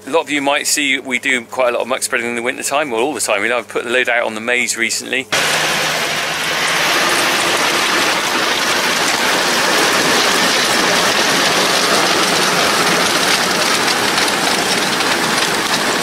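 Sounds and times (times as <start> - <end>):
faint tractor engine: 5.3 - 16.0
manure spreader hiss and patter: 5.3 - 16.0.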